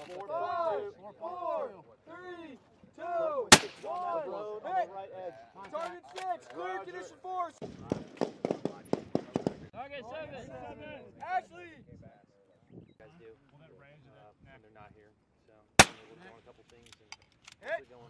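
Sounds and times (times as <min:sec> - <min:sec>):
voices talking: 0:00.0 - 0:18.0
suppressed rifle shot: 0:15.8 - 0:16.1.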